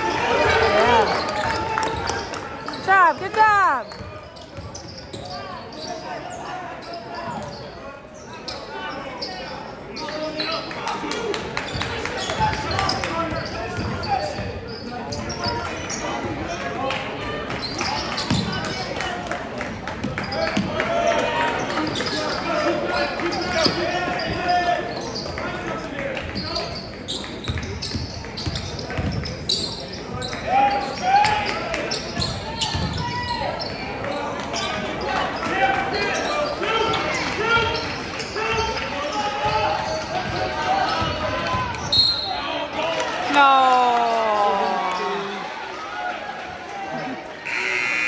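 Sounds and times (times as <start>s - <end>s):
hubbub of voices: 0.0s - 48.0s
sneakers squeaking on court: 0.1s - 10.8s, 11.7s - 16.7s, 17.5s - 18.9s, 26.4s - 31.0s, 31.9s - 42.4s.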